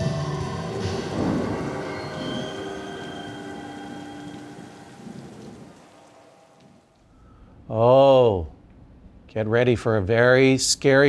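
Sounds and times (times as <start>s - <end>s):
thunder rolling: 0.0s - 6.9s
rain hiss: 0.0s - 7.1s.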